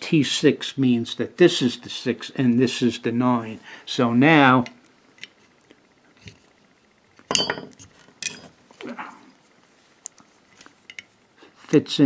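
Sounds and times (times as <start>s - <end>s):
metal tools clinking: 7.3s - 8.5s.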